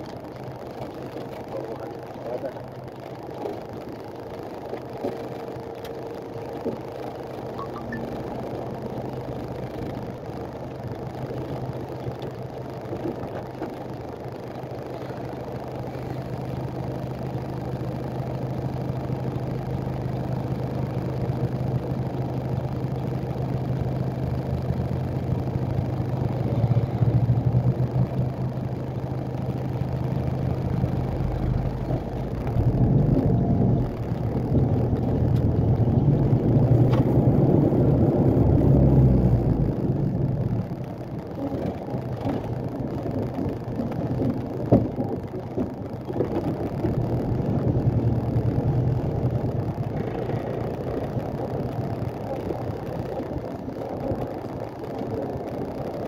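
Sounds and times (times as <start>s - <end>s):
truck diesel engine droning: 0.0s - 56.0s.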